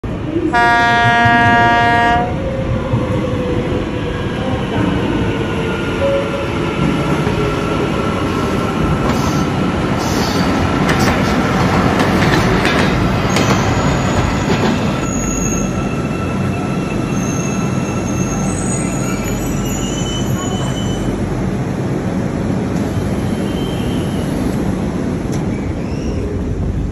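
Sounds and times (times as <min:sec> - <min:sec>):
metro train rumbling: 0:00.0 - 0:26.9
high brake squeal: 0:15.0 - 0:21.2, 0:23.3 - 0:24.4, 0:25.5 - 0:26.4.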